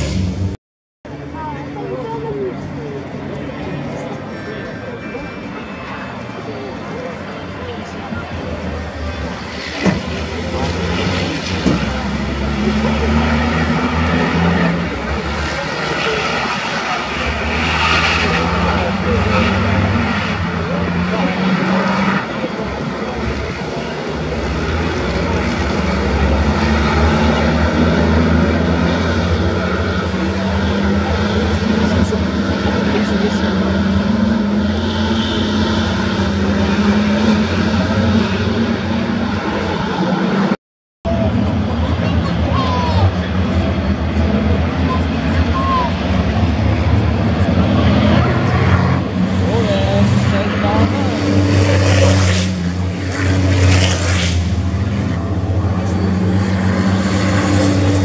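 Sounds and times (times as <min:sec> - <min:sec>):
racing truck diesel engines: 0:00.0 - 0:58.0.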